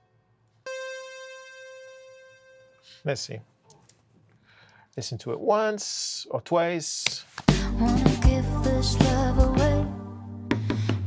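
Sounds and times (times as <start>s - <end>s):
synth keyboard note: 0.0s - 3.2s.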